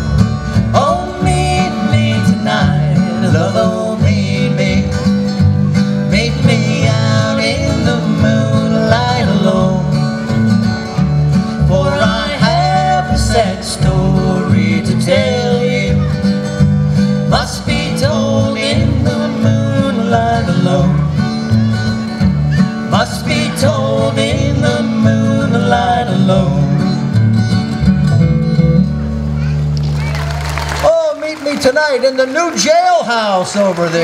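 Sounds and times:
upright bass: 0.0 - 33.2
acoustic guitar: 0.0 - 33.7.

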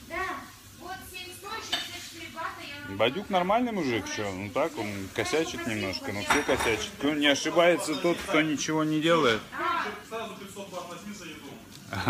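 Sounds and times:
dishes and cutlery clinking: 1.6 - 2.1, 5.6 - 7.2.

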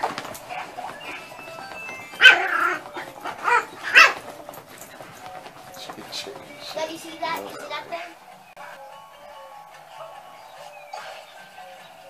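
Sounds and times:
dog barking: 0.3 - 4.4.

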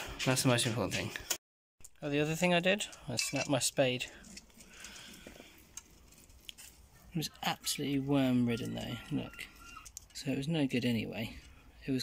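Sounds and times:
soft handling rustle: 2.8 - 7.2.

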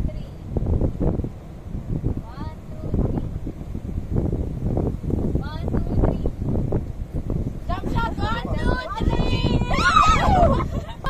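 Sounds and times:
wind rumbling on microphone: 0.0 - 11.0
high voices shrieking and laughing: 8.2 - 11.0.

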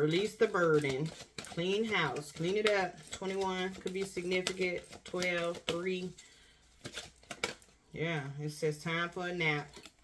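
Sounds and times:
cards being shuffled: 0.2 - 7.8.

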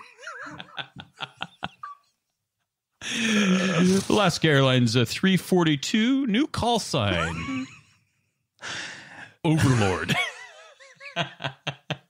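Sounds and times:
man laughing: 0.0 - 2.2, 3.0 - 4.2, 7.0 - 8.3, 9.5 - 12.0.

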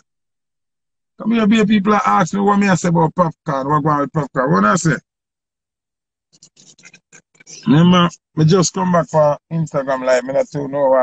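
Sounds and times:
faint scratchy noises: 6.3 - 11.0.

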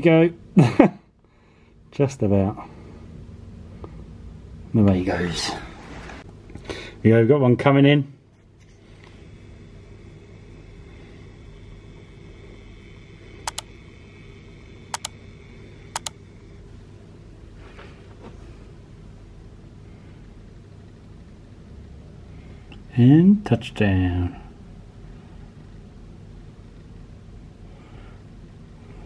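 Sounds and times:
low rumble of room ambience: 0.0 - 29.0
quick double clicks: 13.5 - 13.7, 14.9 - 15.2, 16.0 - 16.2.

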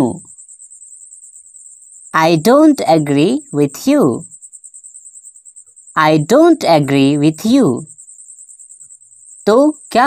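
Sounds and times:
person speaking: 0.0 - 0.2, 2.2 - 4.2, 6.0 - 7.9.

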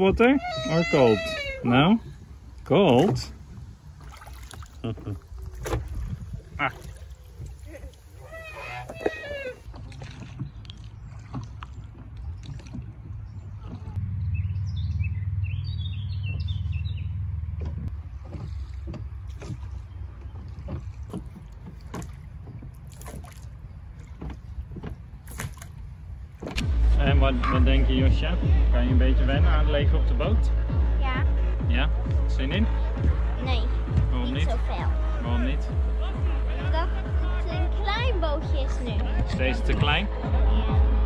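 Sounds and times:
birds chirping: 0.0 - 3.1, 6.4 - 26.5
oars knocking and splashing: 0.0 - 14.2, 16.1 - 28.4, 29.0 - 41.0
low rumble: 4.8 - 21.1, 23.9 - 41.0.

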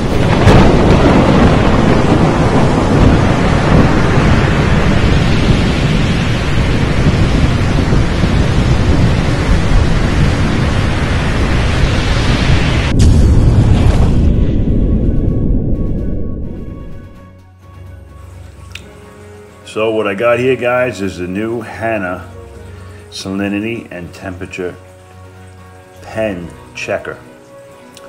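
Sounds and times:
heavy rain: 0.0 - 17.0, 17.8 - 28.0
rolling thunder: 0.0 - 17.4
sharp thunder crack: 0.0 - 17.4.

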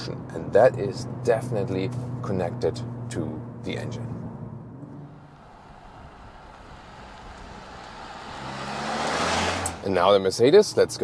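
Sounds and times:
car approaching: 0.0 - 11.0
road noise: 0.0 - 11.0.

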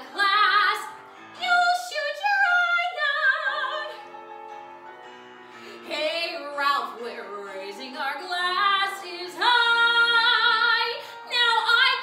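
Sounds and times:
woman singing: 0.0 - 4.1, 5.8 - 12.0.

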